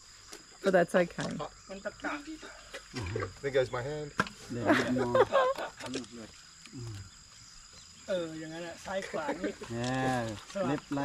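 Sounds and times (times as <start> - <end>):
short low vocal sound: 6.7 - 7.1.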